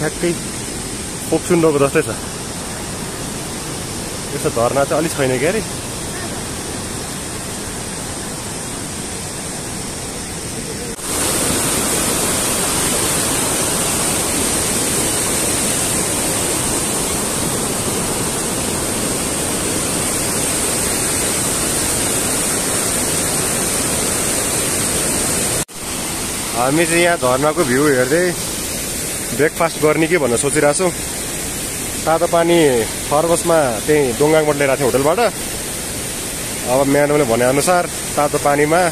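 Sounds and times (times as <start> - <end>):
rushing stream and waterfall: 0.0 - 38.9.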